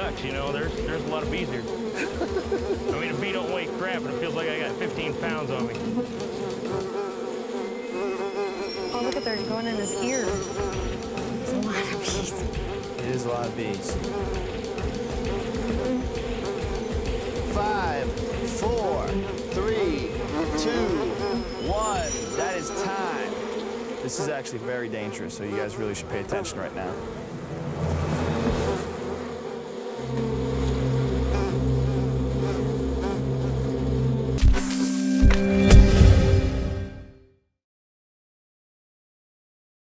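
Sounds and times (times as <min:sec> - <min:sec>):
swarm of bees buzzing: 0:00.0 - 0:34.4.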